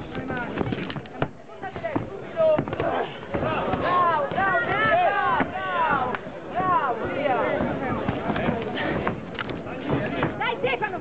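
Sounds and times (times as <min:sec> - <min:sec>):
people shouting: 0:01.6 - 0:09.1.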